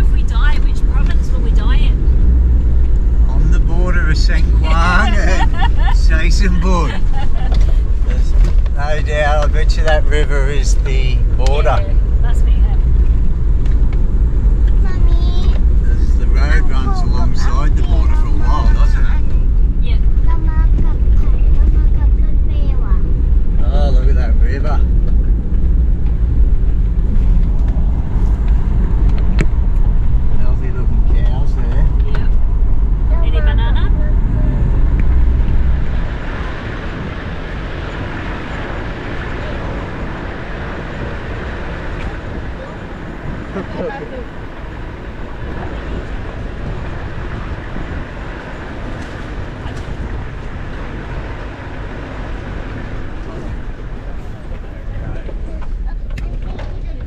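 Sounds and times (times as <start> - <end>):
heavy low rumble: 0.0 - 57.0
vehicle driving on dirt track: 0.0 - 57.0.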